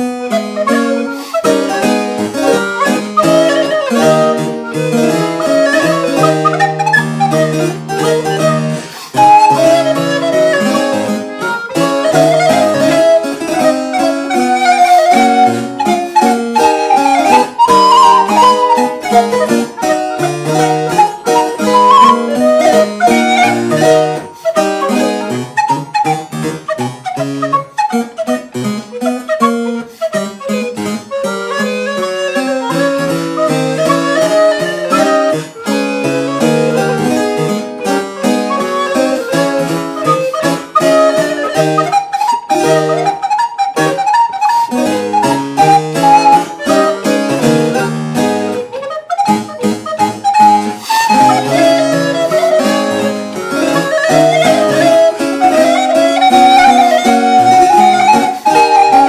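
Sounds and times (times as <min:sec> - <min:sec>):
harpsichord playing: 0:00.0 - 0:59.0
wooden recorder playing fast: 0:00.0 - 0:59.0.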